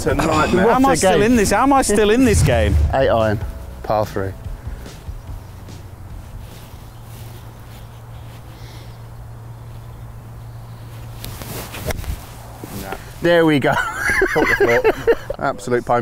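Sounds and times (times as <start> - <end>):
steady low hum: 2.1 - 11.2.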